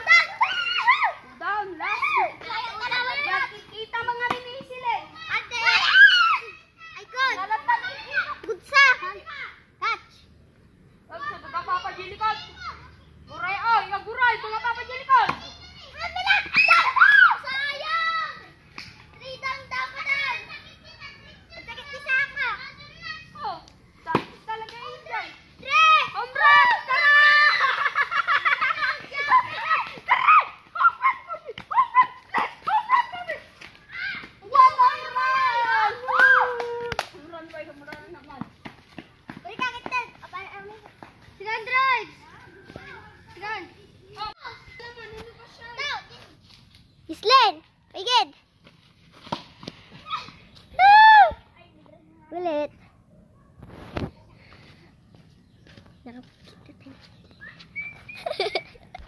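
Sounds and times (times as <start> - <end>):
children shouting at play: 0.0 - 10.2, 11.1 - 37.3, 38.9 - 46.4, 49.6 - 52.8.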